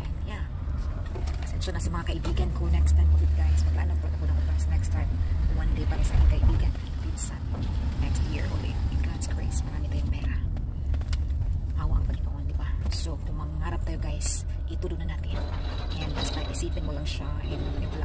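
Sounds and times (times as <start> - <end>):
car engine rumble: 0.0 - 18.0
road noise: 0.0 - 18.0.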